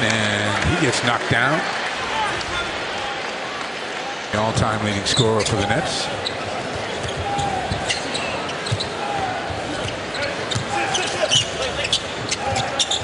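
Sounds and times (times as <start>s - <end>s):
arena crowd noise: 0.0s - 13.0s
shoe squeaks and knocks: 7.0s - 8.9s, 9.8s - 13.0s.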